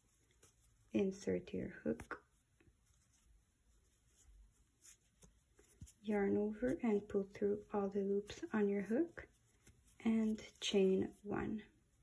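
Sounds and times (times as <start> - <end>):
yarn rubbing on crochet hook: 0.0 - 12.0.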